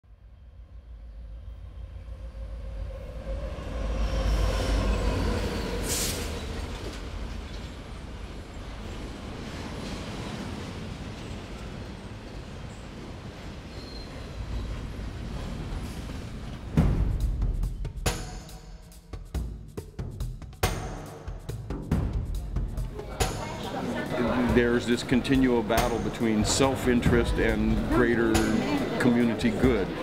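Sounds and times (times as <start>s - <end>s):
passenger train rumbling past: 0.1s - 30.0s.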